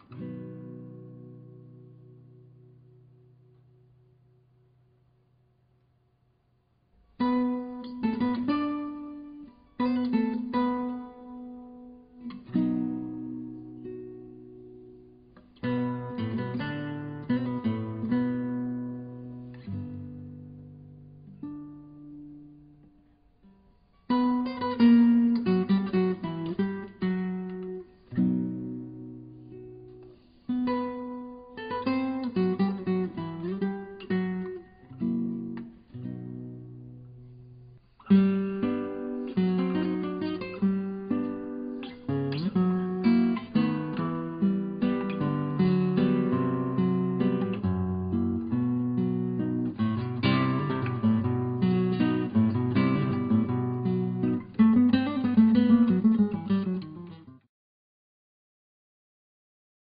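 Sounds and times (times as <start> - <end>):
acoustic guitar music: 0.0 - 5.1, 7.0 - 57.5.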